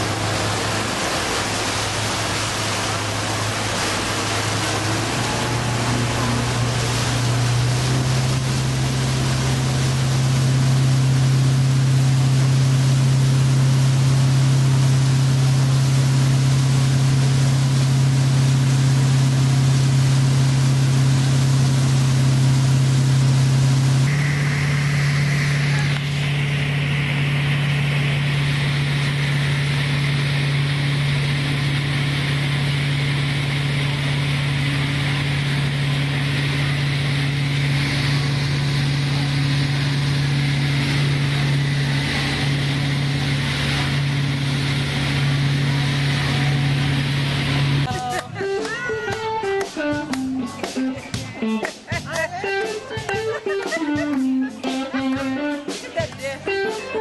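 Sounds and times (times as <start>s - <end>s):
rush of wake and spray: 0.0s - 48.1s
boat engine running: 0.0s - 57.0s.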